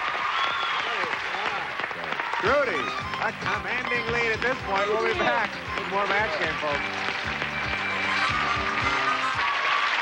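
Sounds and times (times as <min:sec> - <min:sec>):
audience applause: 0:00.0 - 0:10.0.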